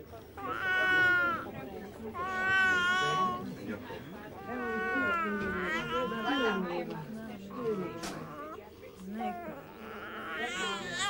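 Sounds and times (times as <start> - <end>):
newborn baby crying: 0.4 - 1.5, 2.2 - 3.4, 4.4 - 6.8, 9.2 - 11.0.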